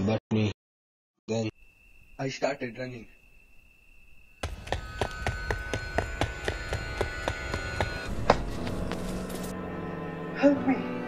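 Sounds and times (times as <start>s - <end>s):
sharp knocks: 4.4s - 9.0s
droning chord: 4.4s - 11.0s.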